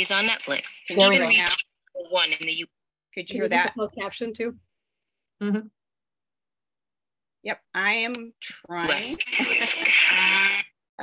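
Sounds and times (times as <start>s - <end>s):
person speaking: 0.0s - 4.3s, 8.4s - 10.7s.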